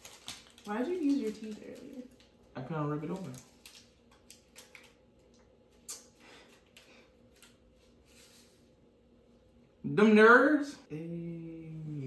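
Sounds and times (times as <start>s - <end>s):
plastic packet crinkling: 0.0s - 5.4s.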